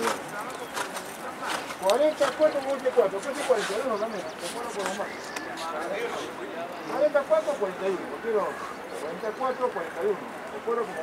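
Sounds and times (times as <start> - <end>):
men talking quietly: 0.0 - 11.0.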